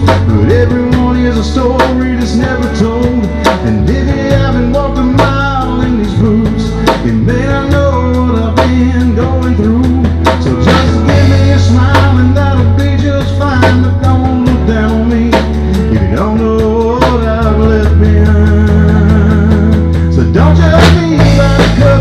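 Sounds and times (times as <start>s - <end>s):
live country band playing: 0.0s - 22.0s.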